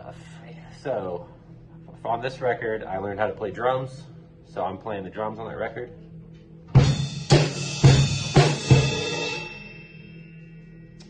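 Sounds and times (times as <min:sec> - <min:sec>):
drum fill hits: 0:06.7 - 0:09.6
cymbal ringing: 0:06.8 - 0:11.0.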